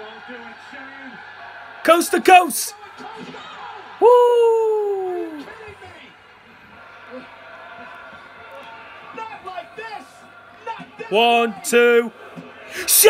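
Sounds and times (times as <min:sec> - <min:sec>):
man whooping: 0:04.0 - 0:05.5.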